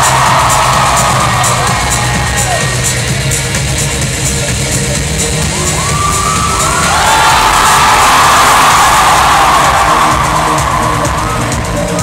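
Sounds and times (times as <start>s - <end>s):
audience cheering and whooping: 0.0s - 2.8s, 5.4s - 12.0s
loud music over sound system: 0.0s - 12.0s.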